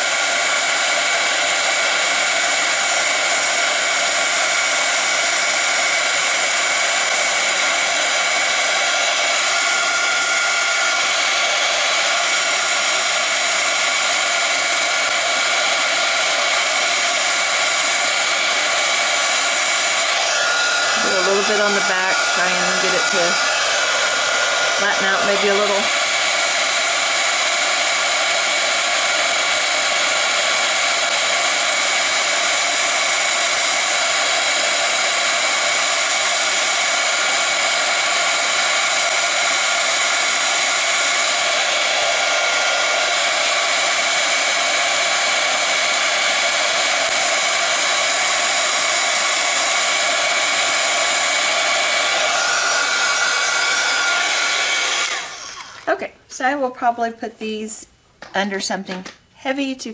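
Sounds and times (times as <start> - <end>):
heat tool blowing air with whine: 0.0 - 56.0.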